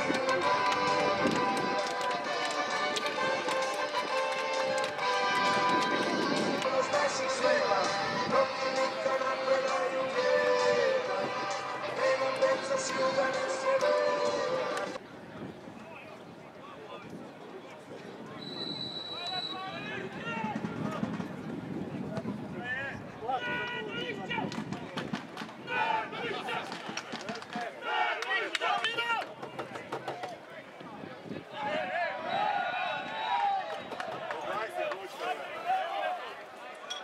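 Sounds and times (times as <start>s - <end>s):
people shouting and talking: 0.0s - 37.0s
referee's whistle: 18.4s - 19.8s.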